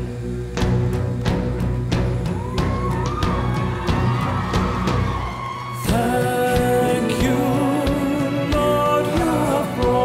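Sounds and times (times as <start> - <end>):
low held drone: 0.0 - 4.4
singing: 5.6 - 10.0.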